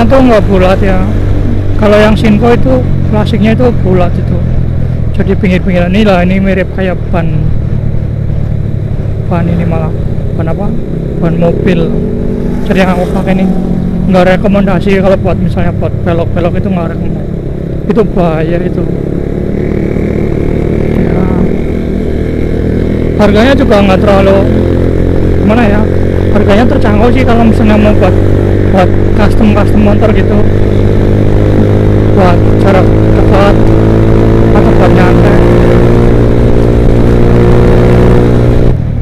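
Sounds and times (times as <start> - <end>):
motorcycle engine running: 0.0 - 39.0.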